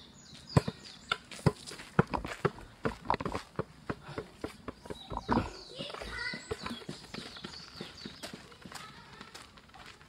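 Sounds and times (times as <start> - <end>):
footsteps on dirt path: 0.3 - 10.0.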